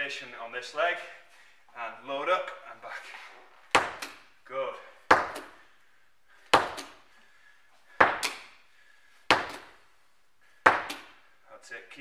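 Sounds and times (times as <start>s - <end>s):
medicine ball thudding against wall: 3.7s - 4.3s, 5.1s - 5.6s, 6.5s - 7.0s, 7.9s - 8.6s, 9.3s - 9.8s, 10.6s - 11.2s.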